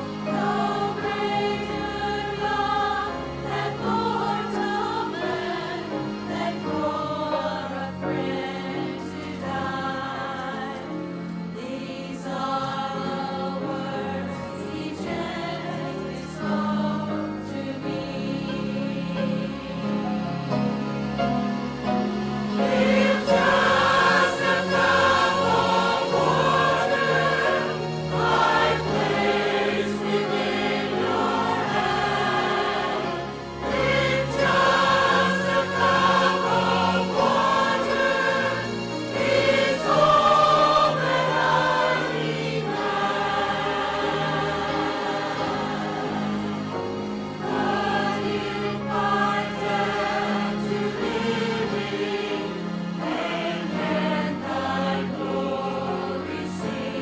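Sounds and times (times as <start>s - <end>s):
low instrumental accompaniment: 0.0s - 57.0s
mixed choir singing: 0.0s - 57.0s.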